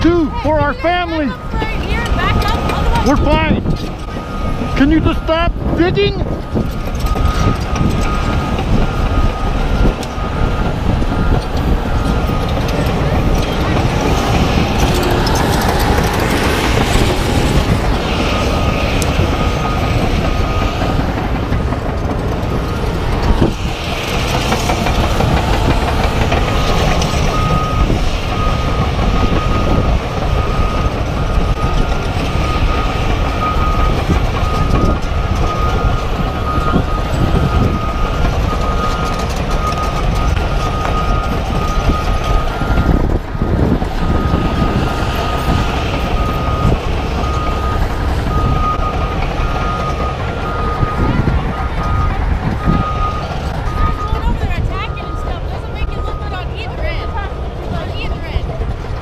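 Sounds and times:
backup alarm beeping: 0.0s - 58.5s
heavy machinery rumbling: 0.0s - 59.0s.

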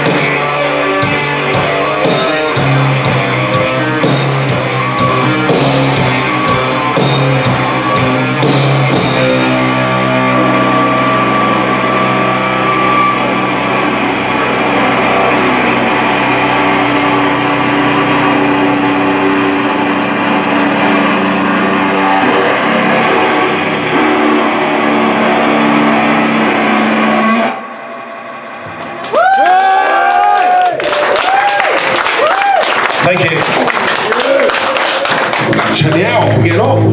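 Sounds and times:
electric guitar chords ringing: 0.0s - 30.0s, 35.2s - 36.9s
audience cheering and clapping: 28.4s - 36.9s.

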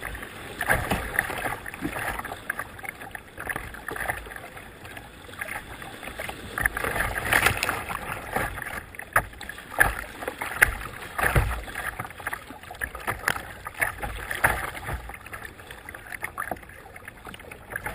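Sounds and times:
rushing water: 0.0s - 17.9s
water slapping against kayak: 0.0s - 17.9s.

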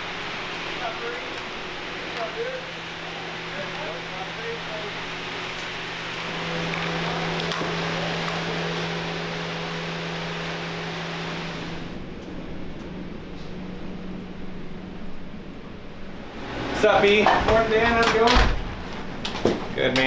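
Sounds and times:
low hum: 0.0s - 17.8s
machinery and ventilation hum: 0.0s - 20.0s.

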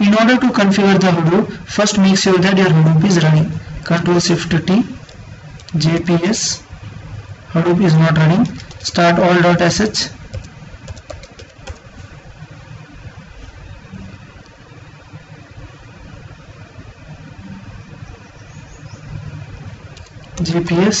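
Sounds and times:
computer keyboard keys clicking: 8.4s - 9.0s, 10.3s - 11.9s, 20.0s - 20.5s.

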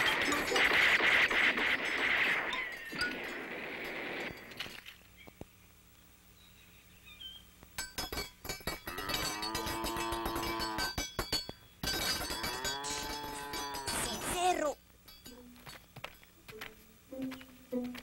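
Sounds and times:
cowbell rattling: 7.8s - 14.5s
cow mooing: 8.9s - 10.9s.

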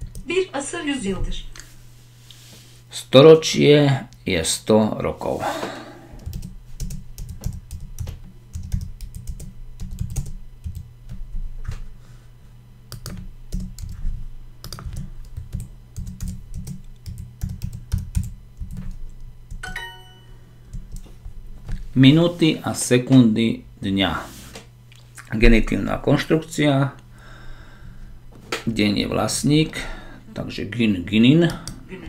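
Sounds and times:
short ringing chime: 19.6s - 20.4s.

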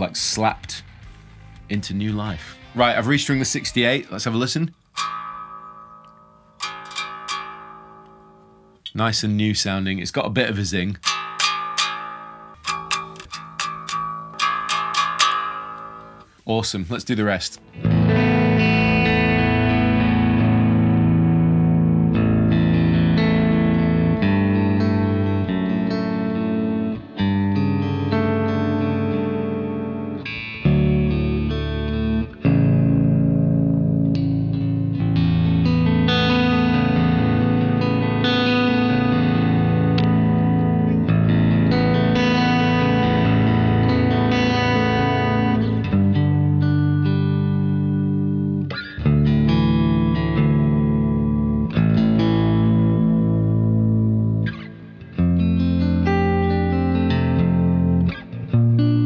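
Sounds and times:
distorted electric guitar: 0.0s - 9.0s, 10.9s - 16.4s, 17.4s - 59.0s.

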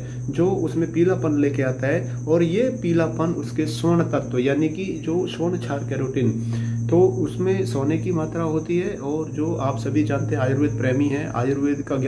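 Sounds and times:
high-pitched whine: 0.0s - 12.0s
steady low hum: 0.0s - 12.0s
man talking: 0.3s - 12.0s.

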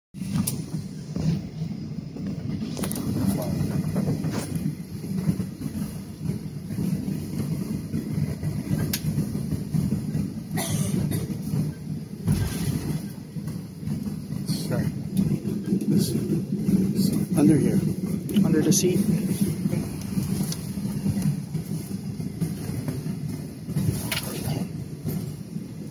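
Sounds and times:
low cabin hum: 0.2s - 25.9s
passenger chatter: 0.3s - 25.9s.

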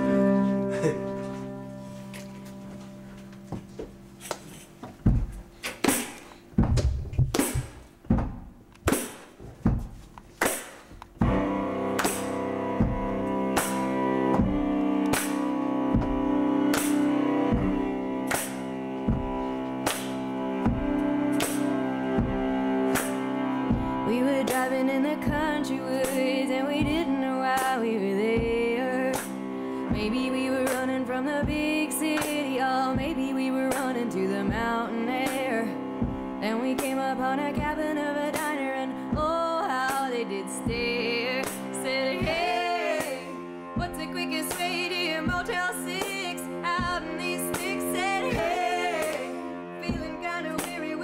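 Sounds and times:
bowed cello: 0.0s - 3.7s, 11.2s - 51.0s
acoustic band chord: 0.0s - 3.8s, 11.2s - 51.0s
hands clapping: 4.2s - 4.5s, 10.4s - 11.2s, 11.9s - 12.4s, 15.0s - 15.4s, 16.7s - 17.2s, 18.2s - 18.8s, 19.8s - 20.3s, 21.3s - 21.7s, 22.9s - 23.2s, 49.0s - 49.4s
steady clapped beat: 4.2s - 26.2s, 28.4s - 35.4s, 40.7s - 51.0s.

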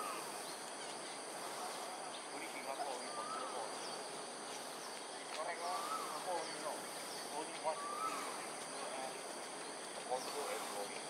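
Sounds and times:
faint chirps: 0.0s - 11.0s.

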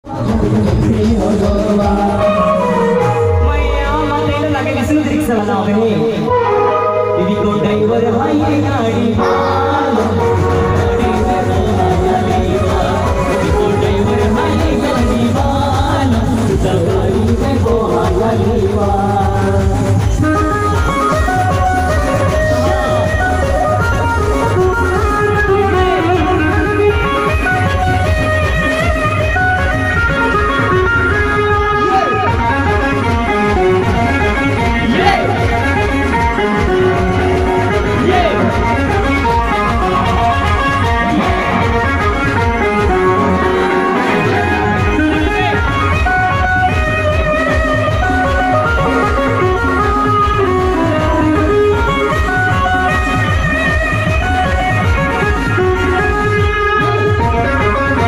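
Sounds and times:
keyboard melody: 0.0s - 58.0s
loud music over loudspeakers: 0.0s - 58.0s.

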